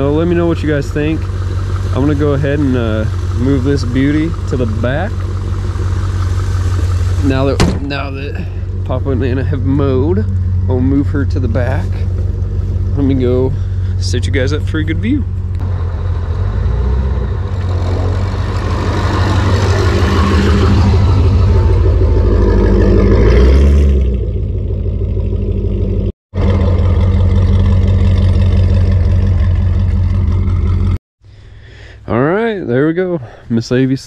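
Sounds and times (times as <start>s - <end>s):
car engine driving past: 15.1s - 31.0s.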